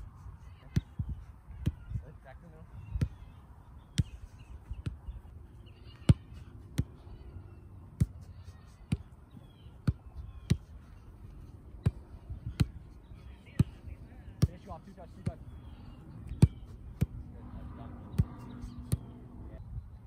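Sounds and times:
soccer balls kicked: 0.0s - 19.3s.

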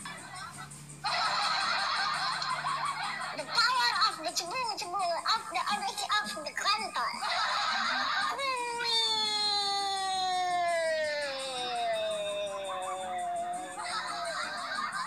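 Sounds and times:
high-pitched descending wail: 7.2s - 15.0s.

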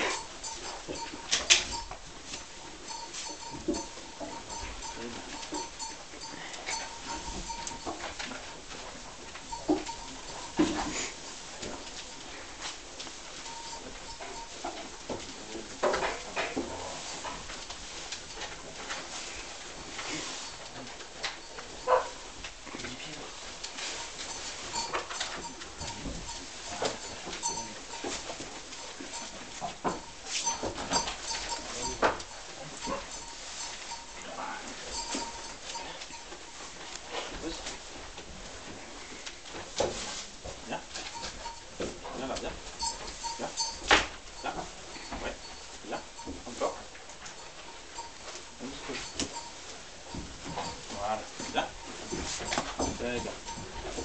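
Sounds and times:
horse hooves shifting in straw: 0.0s - 54.0s
rustles and knocks: 0.0s - 54.0s.

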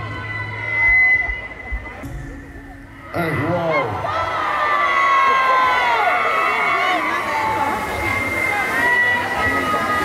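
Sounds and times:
crowd voices: 0.0s - 10.0s
deep bass beat: 1.2s - 4.6s.

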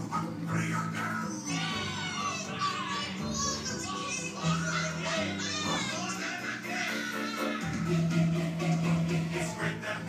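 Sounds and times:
recorded music: 0.0s - 10.0s
children shrieking and laughing: 1.4s - 7.9s.

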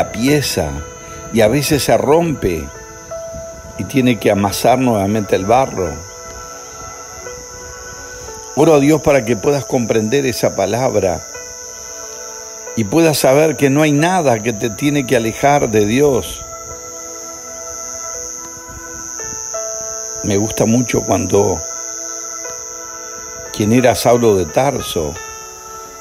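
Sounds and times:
crickets chirring: 0.0s - 26.0s
soft background music: 0.0s - 26.0s
soft keyboard chords: 0.0s - 26.0s.

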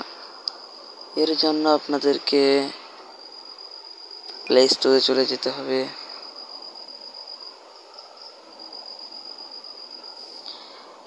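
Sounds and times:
faint background hiss: 0.0s - 11.0s
insects trilling: 0.0s - 11.0s.

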